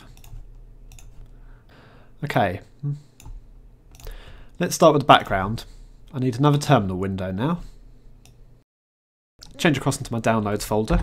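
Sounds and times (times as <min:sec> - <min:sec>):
computer mouse clicks: 0:00.1 - 0:01.3, 0:03.2 - 0:04.1.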